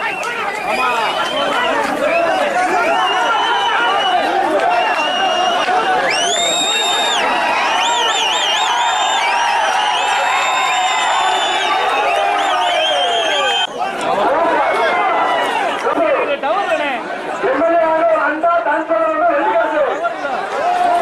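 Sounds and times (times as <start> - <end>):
shrill whistles: 0.0 - 13.8
crowd shouting: 0.0 - 21.0.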